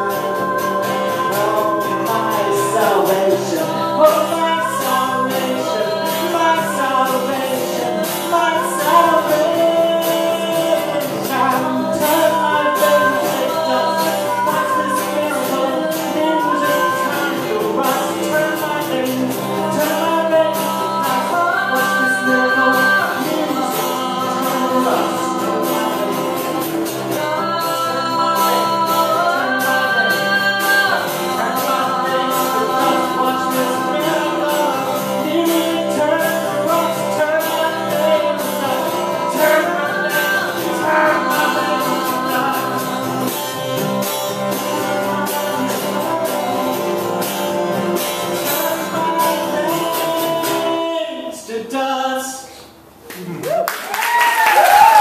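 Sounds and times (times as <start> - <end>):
voices singing in harmony: 0.0 - 47.5
acoustic guitar strumming: 0.0 - 52.9.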